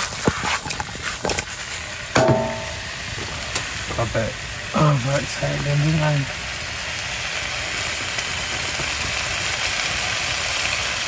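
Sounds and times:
food sizzling in a frying pan: 0:00.0 - 0:11.0
pan knocks: 0:02.2 - 0:02.8.

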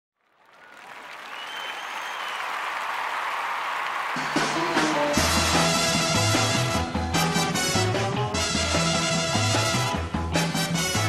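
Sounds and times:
audience applauding: 0:00.2 - 0:05.9.

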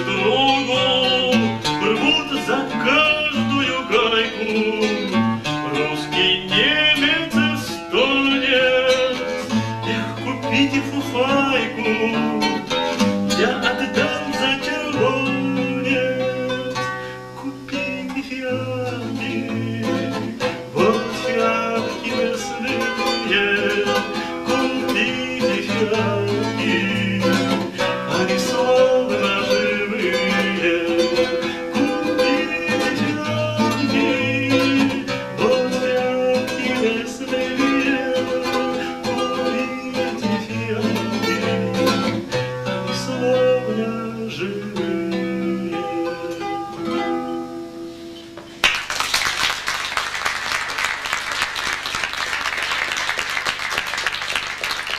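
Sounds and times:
classical acoustic guitar: 0:00.0 - 0:48.9, 0:49.6 - 0:54.9.

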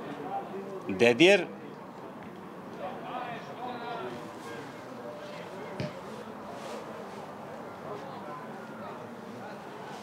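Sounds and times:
outdoor field noise: 0:00.0 - 0:10.0.

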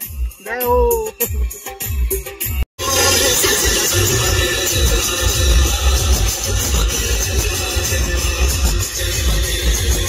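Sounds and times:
loud music with pulsing bass: 0:00.1 - 0:10.0.

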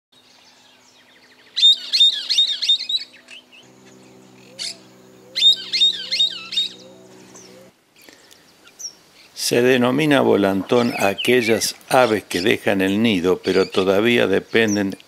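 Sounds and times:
faint low hum: 0:00.2 - 0:15.0
songbird calling: 0:00.2 - 0:15.0.

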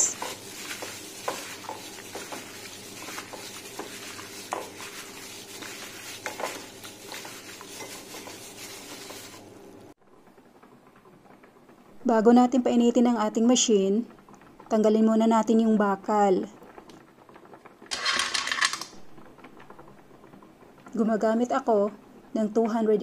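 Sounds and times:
wet mixing by hand: 0:00.0 - 0:10.0.

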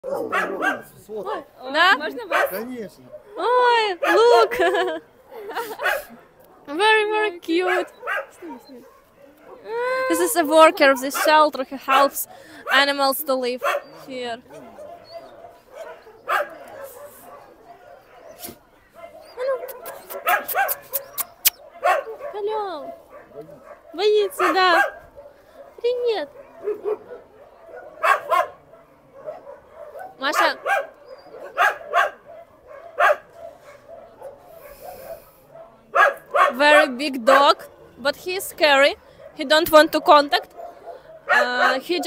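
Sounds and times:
dogs barking and yelping: 0:00.0 - 0:42.0.

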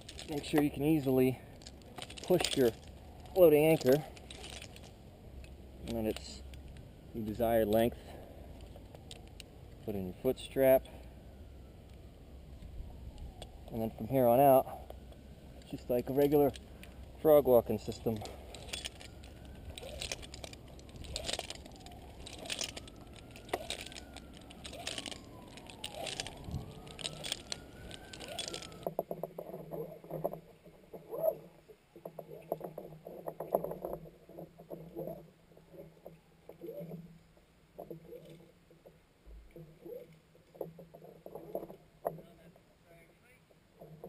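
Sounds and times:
rope knocks and creaks: 0:00.0 - 0:08.0, 0:15.6 - 0:42.6, 0:43.8 - 0:44.0
rope ascender clicks: 0:17.4 - 0:29.2.

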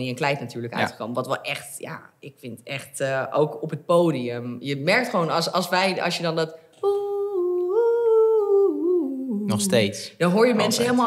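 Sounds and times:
woman humming a tune: 0:06.8 - 0:09.9.

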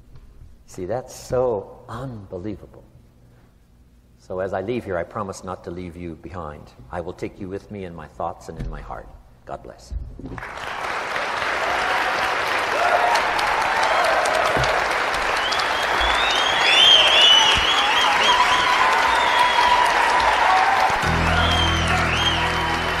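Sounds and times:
audience applauding: 0:10.4 - 0:23.0
music: 0:20.8 - 0:23.0.

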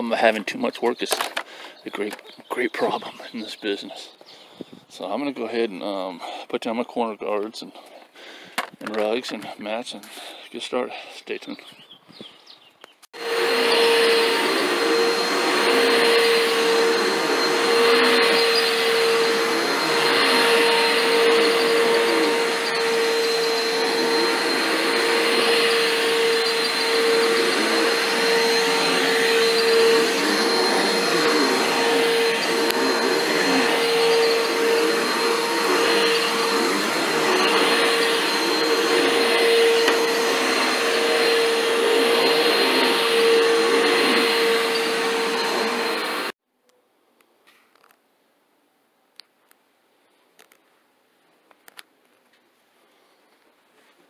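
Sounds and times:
vacuum cleaner on carpet: 0:13.1 - 0:46.4.

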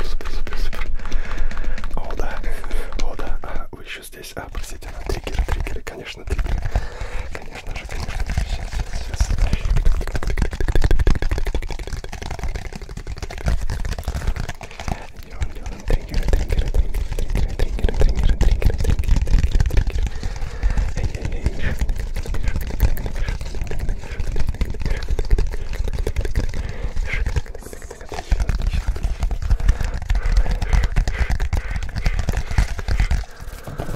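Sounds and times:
person whispering: 0:00.0 - 0:01.0, 0:01.9 - 0:10.4, 0:14.1 - 0:33.9
fidget toy clicks and rubs: 0:00.0 - 0:03.3, 0:04.4 - 0:33.9.

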